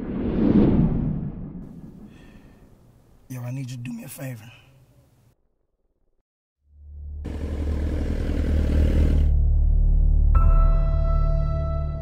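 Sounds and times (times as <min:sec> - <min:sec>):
deep low rumble: 0:00.0 - 0:02.7
motorcycle engine running: 0:07.2 - 0:09.3.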